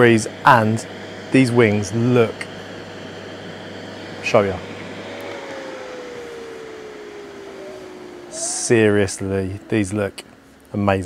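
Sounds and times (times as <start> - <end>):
grill fan whirring: 0.0 - 11.0
faint tone falling in pitch: 4.2 - 10.4.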